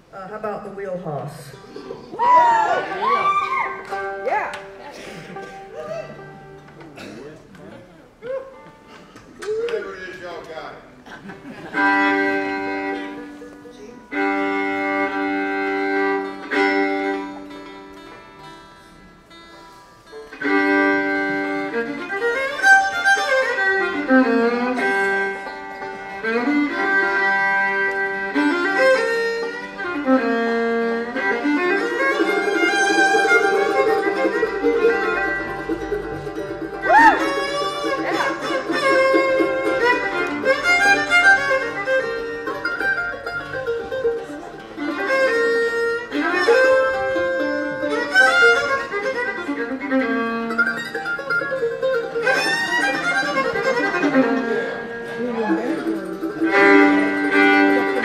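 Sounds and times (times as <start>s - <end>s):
fiddle with sliding notes: 0.0s - 6.9s, 11.4s - 58.0s
banjo rolls: 3.0s - 7.6s, 11.2s - 58.0s
guitar and mandolin chopping chords: 31.3s - 49.4s, 50.5s - 58.0s.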